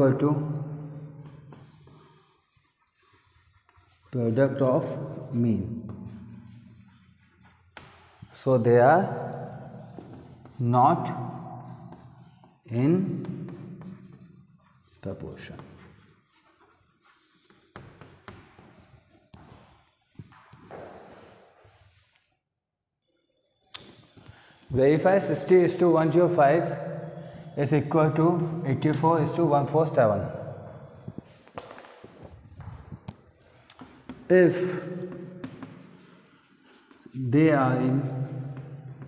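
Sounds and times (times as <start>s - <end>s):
chalk scratching on blackboard: 1.2s - 8.4s, 9.5s - 19.8s, 27.5s - 29.9s, 33.5s - 39.0s
chalk tapping: 1.2s - 8.4s, 9.4s - 21.3s, 28.0s - 29.5s, 33.0s - 39.0s.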